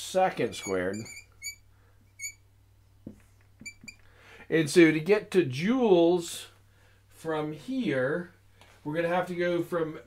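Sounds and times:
marker squeaking on a whiteboard: 0:00.5 - 0:02.4, 0:03.2 - 0:04.0.

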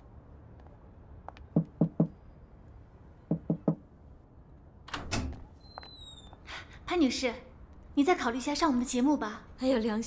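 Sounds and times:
knocking on security door: 0:01.6 - 0:02.2, 0:03.3 - 0:03.8.

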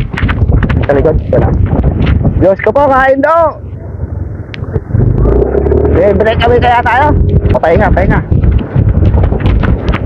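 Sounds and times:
motorcycle engine droning: 0:03.4 - 0:09.9.

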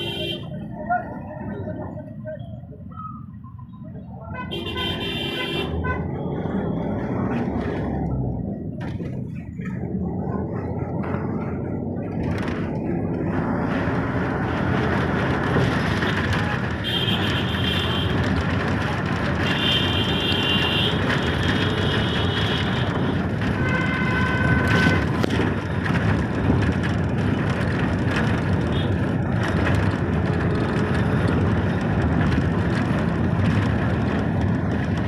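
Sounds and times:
engine and road rumble: 0:00.0 - 0:35.0
vehicle horn honking: 0:23.6 - 0:25.0.

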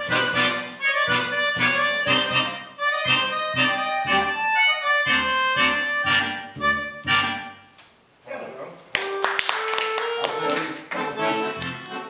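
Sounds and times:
accordions playing held notes: 0:00.0 - 0:07.8, 0:09.0 - 0:12.0.

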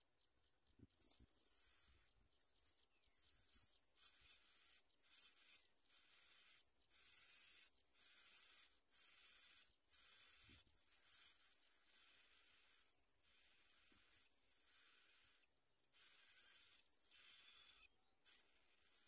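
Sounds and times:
thin bird chirps: 0:00.0 - 0:19.0.

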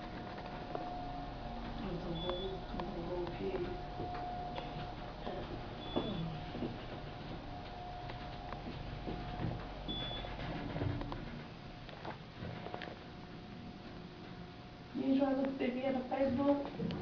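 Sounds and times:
elevator low rumble: 0:00.0 - 0:17.0.

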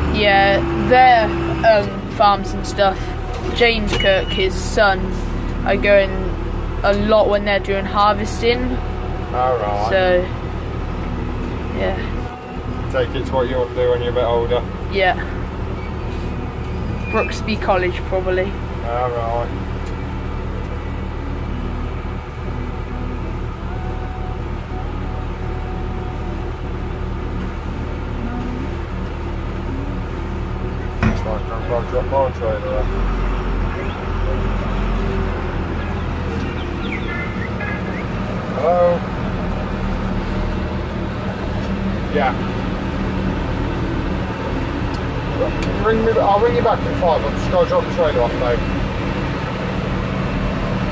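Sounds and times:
forage harvester running: 0:00.0 - 0:50.9
road noise: 0:00.0 - 0:50.9
tractor engine drone: 0:00.0 - 0:50.9.

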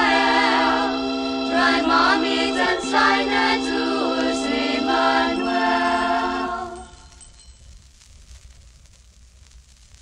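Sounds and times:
group singing a carol: 0:00.0 - 0:07.2
record surface crackle: 0:01.8 - 0:10.0.

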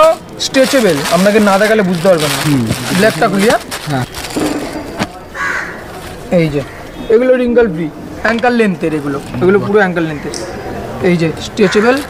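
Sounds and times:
man speaking: 0:00.0 - 0:04.2, 0:06.3 - 0:10.4.

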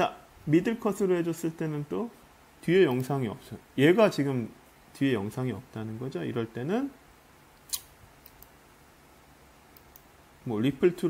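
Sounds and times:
computer mouse click: 0:09.7 - 0:10.1.

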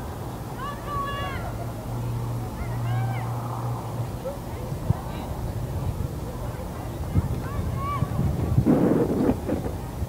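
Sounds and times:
distant crowd shouts: 0:00.5 - 0:01.6, 0:02.5 - 0:03.9, 0:07.0 - 0:08.3.

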